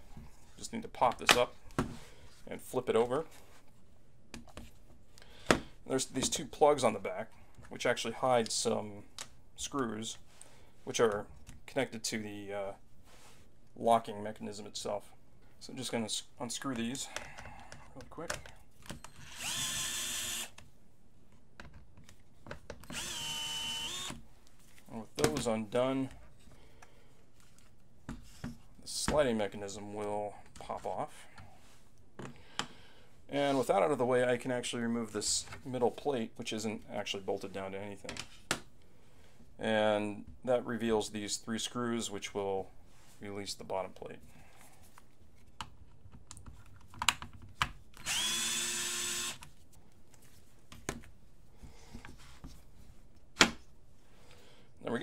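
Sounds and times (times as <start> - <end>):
cordless driver whine: 19.2 - 20.6, 22.9 - 24.2, 48.0 - 49.4.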